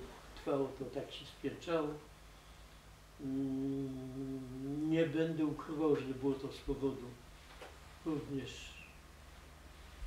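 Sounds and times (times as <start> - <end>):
man humming in hesitation: 3.2 - 5.0.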